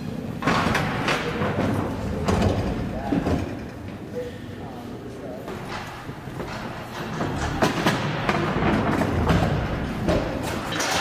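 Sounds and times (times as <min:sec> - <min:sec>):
pallet jack wheels rumbling: 0:05.5 - 0:11.0
pallet jack clunks and knocks: 0:05.6 - 0:11.0.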